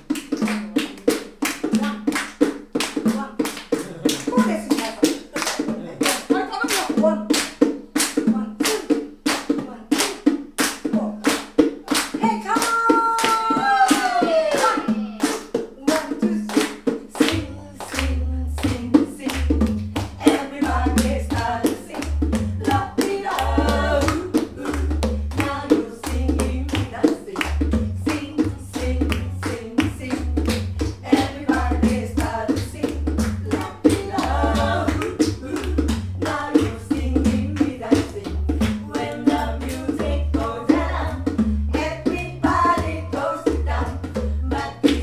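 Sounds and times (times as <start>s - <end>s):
audience clapping along: 0.0s - 8.2s, 9.3s - 18.7s, 33.5s - 36.8s
women's vocal group singing: 0.0s - 45.0s.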